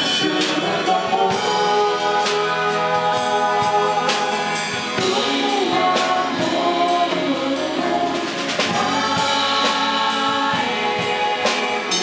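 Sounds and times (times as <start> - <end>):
electric bass: 0.0 - 12.0
keyboard: 0.0 - 12.0
women singing: 0.0 - 12.0.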